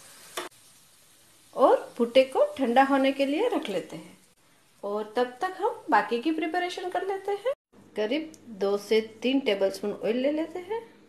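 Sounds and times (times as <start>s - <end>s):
gas burner hissing: 0.0s - 7.4s.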